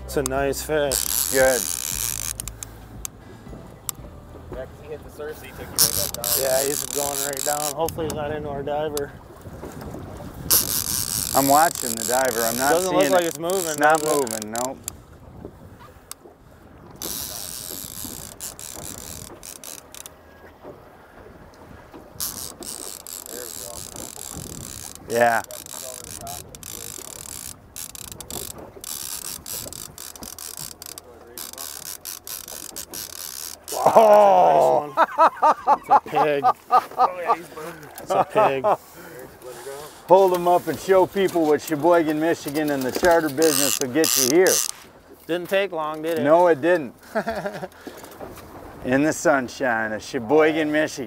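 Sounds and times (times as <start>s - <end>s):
wind noise on microphone: 0.0s - 4.9s, 5.5s - 13.3s, 14.2s - 19.8s, 21.2s - 30.8s
fishing reel ratcheting: 0.1s - 3.1s, 5.7s - 8.2s, 10.5s - 15.0s, 17.0s - 20.2s, 22.2s - 33.9s, 41.2s - 44.9s.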